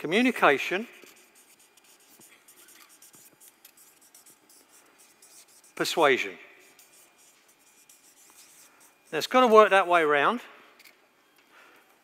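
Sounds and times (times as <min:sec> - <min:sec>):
marker scratching on paper: 0:01.0 - 0:09.6.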